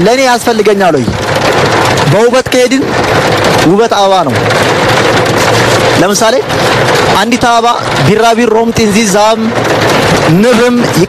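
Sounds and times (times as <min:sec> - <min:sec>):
person talking: 0:02.0 - 0:04.5, 0:05.8 - 0:09.6, 0:10.2 - 0:11.0.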